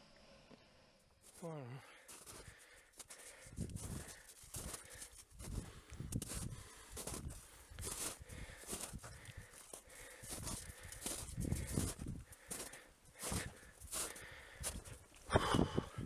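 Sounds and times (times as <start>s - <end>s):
footsteps crunching through snow: 1.2s - 15.2s
wind buffeting microphone: 3.5s - 4.8s, 5.4s - 9.4s, 10.3s - 12.3s, 14.6s - 16.0s.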